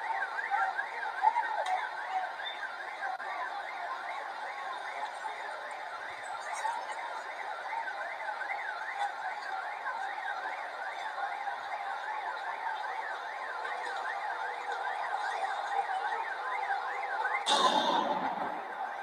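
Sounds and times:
electronic siren warbling: 17.5s - 19.0s.

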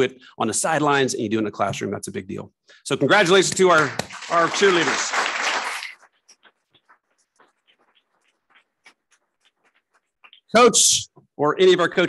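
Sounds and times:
people clapping: 3.1s - 9.1s.

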